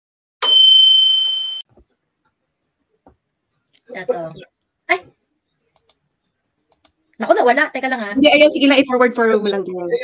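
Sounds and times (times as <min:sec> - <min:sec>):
notification bell ding: 0:00.4 - 0:01.7.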